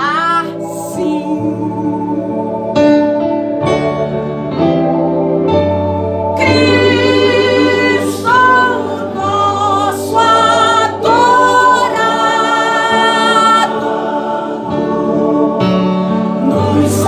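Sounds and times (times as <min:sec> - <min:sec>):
voices singing gospel with vibrato: 0:00.0 - 0:03.1, 0:06.1 - 0:17.0
low musical accompaniment: 0:00.0 - 0:17.0.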